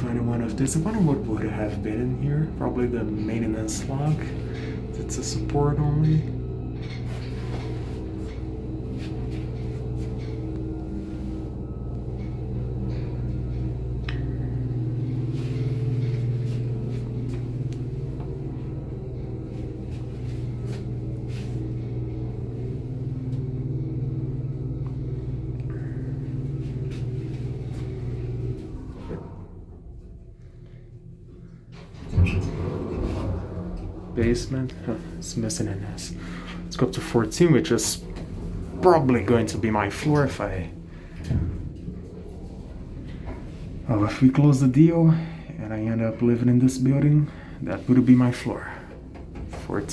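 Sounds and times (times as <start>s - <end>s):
elevator machinery humming: 0.0s - 49.9s
elevator door clunk: 31.7s - 36.6s.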